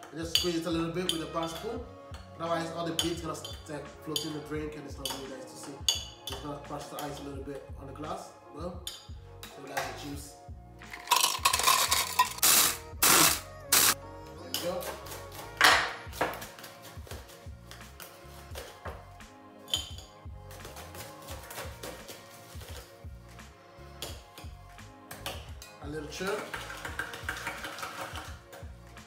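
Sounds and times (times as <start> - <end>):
background music: 0.0 - 29.0
ice being crushed: 10.9 - 14.0, 26.4 - 28.3
ice cubes clattering: 10.9 - 14.0
spoon scooping crushed ice: 10.9 - 14.0.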